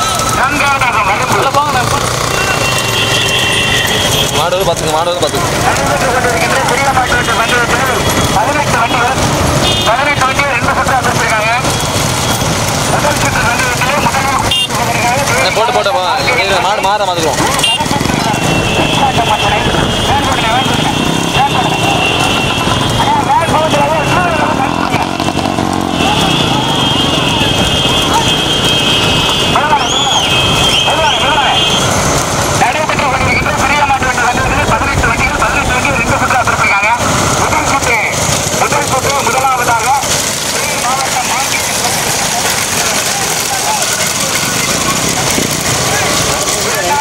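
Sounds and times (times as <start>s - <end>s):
motorbike engines running: 0.0s - 47.0s
shouted race commentary: 0.0s - 47.0s.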